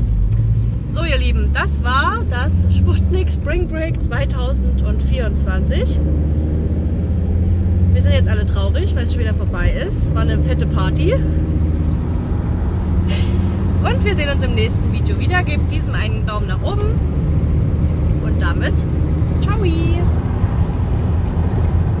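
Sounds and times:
van engine and tyres on road: 0.0 - 22.0
woman talking: 0.9 - 6.0, 7.9 - 11.3, 13.1 - 17.0, 18.2 - 18.8, 19.4 - 20.1.

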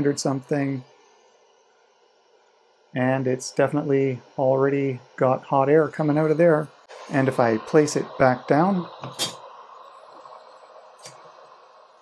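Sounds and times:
hot air tool hissing: 0.0 - 12.0.

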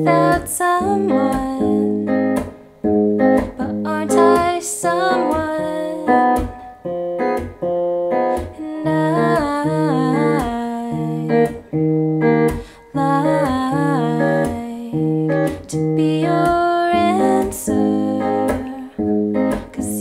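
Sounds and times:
person singing softly: 0.0 - 2.1, 3.5 - 6.6, 8.4 - 11.6, 12.5 - 20.0
electric guitar fingerpicked arpeggio: 0.0 - 20.0.

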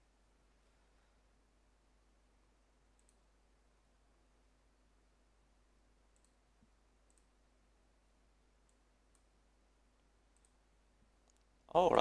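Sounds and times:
computer mouse clicks: 3.0 - 3.2, 6.1 - 7.4, 8.6 - 9.3, 10.3 - 10.6.

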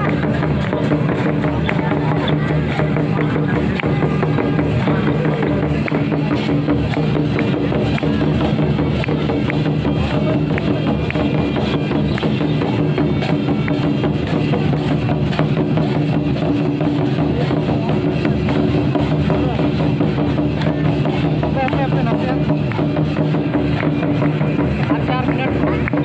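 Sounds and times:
hand drums beating rhythm: 0.0 - 26.0
large round drum beating: 0.0 - 26.0.

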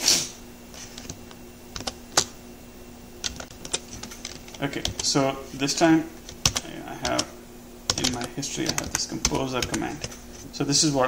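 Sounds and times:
keyboard key clicks: 6.3 - 7.3, 7.9 - 10.2.

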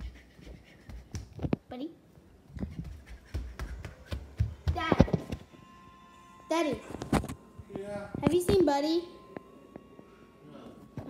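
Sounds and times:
quick footsteps on hard floor: 0.0 - 1.6, 2.5 - 5.5
young girl's voice: 4.7 - 5.3.

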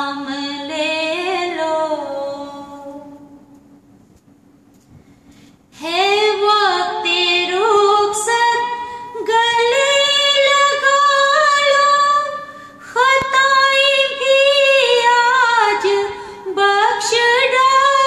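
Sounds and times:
woman singing unaccompanied: 0.0 - 3.4, 5.8 - 18.0.

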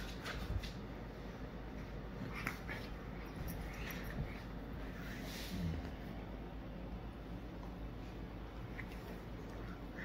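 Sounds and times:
puppies play-wrestling: 0.0 - 6.6.

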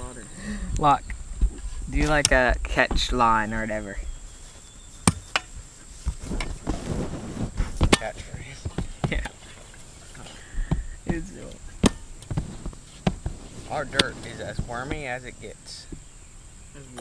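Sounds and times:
spade scraping and scuffing: 4.4 - 10.2
spade striking dirt: 5.0 - 6.5, 7.7 - 9.4, 11.8 - 12.4.

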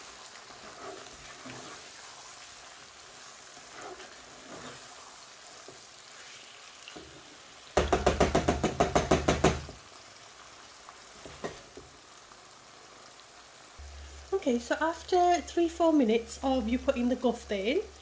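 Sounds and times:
spatula scraping a pan: 0.0 - 7.3
food sizzling in a frying pan: 0.0 - 18.0
spatula knocking against a pan: 7.8 - 9.8.

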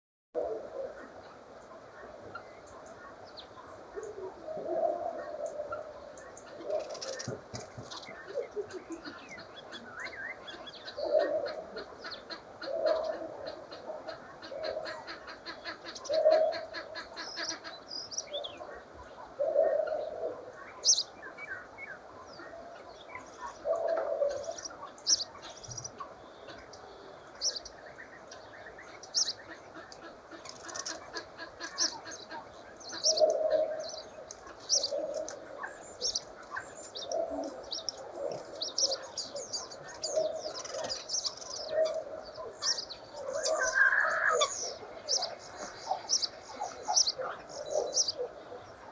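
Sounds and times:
birds chirping: 0.4 - 48.9
low cooing calls: 0.4 - 48.9.

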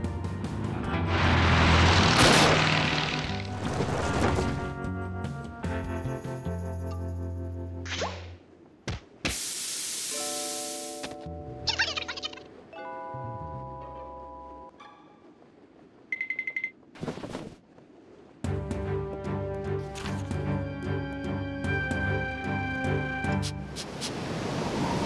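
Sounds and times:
long hiss: 9.3 - 11.1
cartoon music: 11.5 - 14.2.

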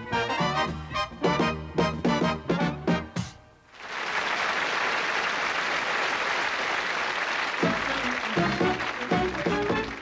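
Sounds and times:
audience applauding: 3.7 - 10.0.

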